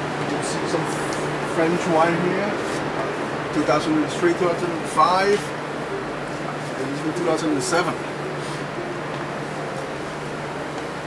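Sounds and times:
air-conditioning hum and hiss: 0.0s - 11.0s.

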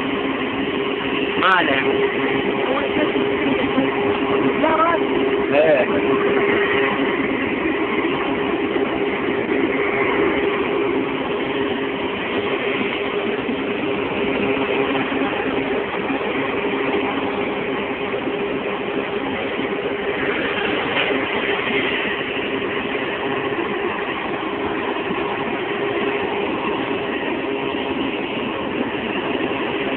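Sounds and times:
drilling rig engines running: 0.0s - 29.9s.

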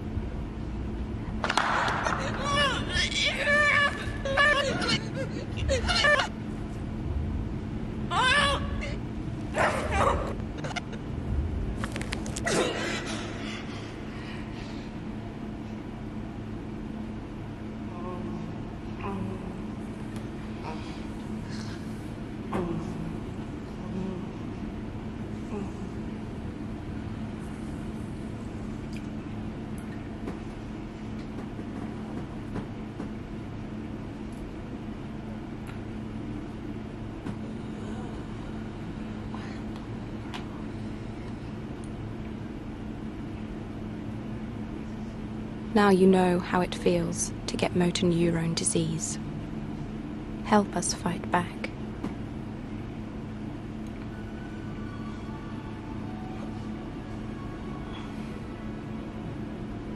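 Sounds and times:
low droning hum: 0.0s - 59.9s.

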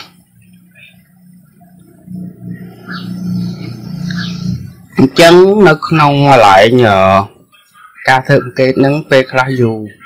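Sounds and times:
low steady hum: 0.0s - 8.2s.

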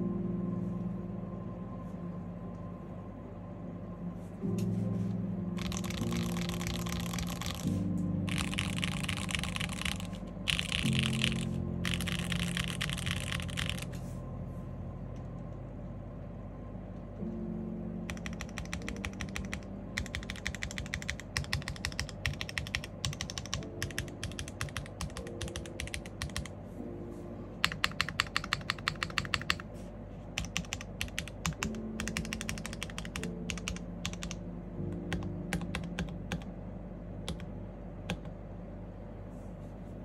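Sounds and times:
mechanical keyboard typing: 5.6s - 7.7s, 8.3s - 14.0s, 18.1s - 26.5s, 27.6s - 29.6s, 30.4s - 34.4s, 35.1s - 36.5s, 37.2s - 37.5s, 38.1s - 38.3s.

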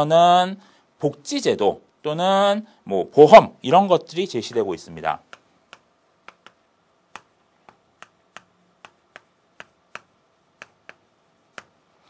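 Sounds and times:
chalk clicking on chalkboard: 4.5s - 11.8s.

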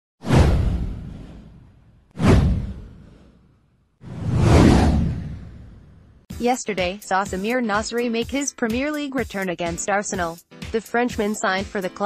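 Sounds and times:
whoosh: 0.2s - 6.3s
deep low rumble: 4.1s - 6.2s.

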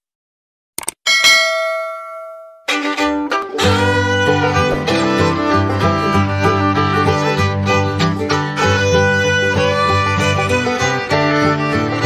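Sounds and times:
notification bell ding: 1.1s - 2.7s.

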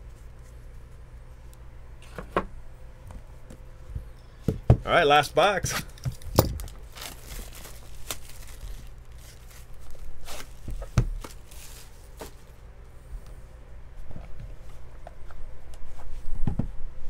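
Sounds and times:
plastic shrink wrap tearing: 6.5s - 12.5s.

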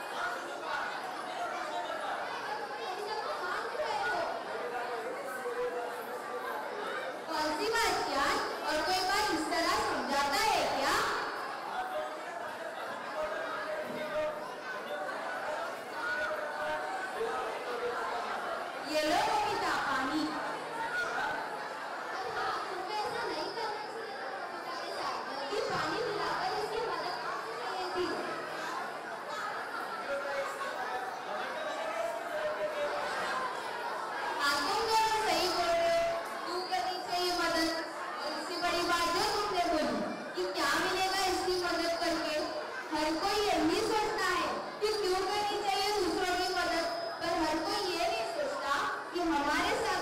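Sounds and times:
voices chattering: 0.0s - 50.0s.

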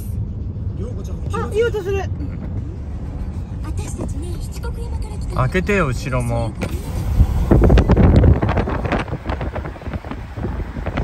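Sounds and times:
wind buffeting microphone: 6.8s - 11.0s.

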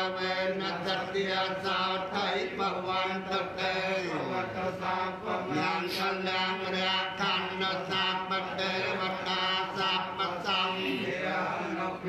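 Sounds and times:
monks chanting: 0.0s - 12.0s.

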